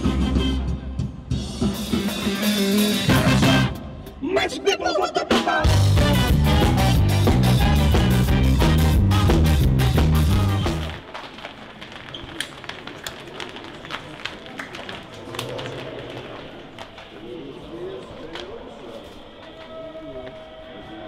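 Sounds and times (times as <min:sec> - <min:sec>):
live rock band: 0:05.2 - 0:10.9
murmured voices: 0:11.3 - 0:21.0.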